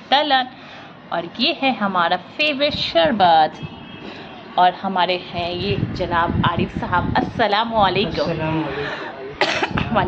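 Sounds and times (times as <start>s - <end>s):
cough: 9.4s - 9.9s.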